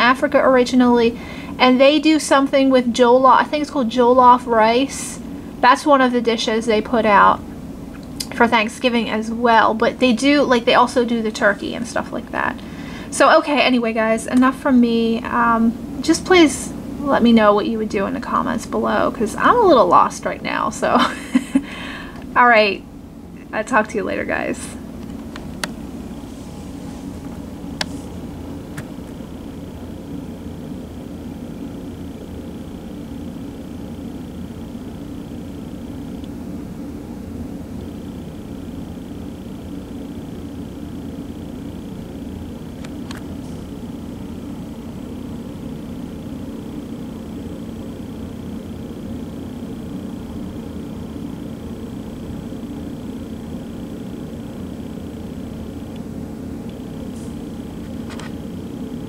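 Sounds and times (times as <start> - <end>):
low hum and rumble: 0.0 - 59.0.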